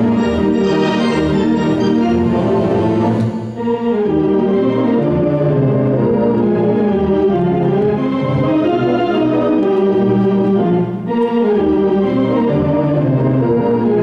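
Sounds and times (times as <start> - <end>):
theatre organ playing chords: 0.0 - 14.0.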